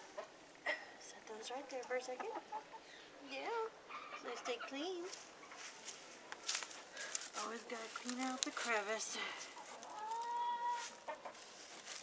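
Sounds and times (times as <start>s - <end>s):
hen calling: 9.6s - 11.4s.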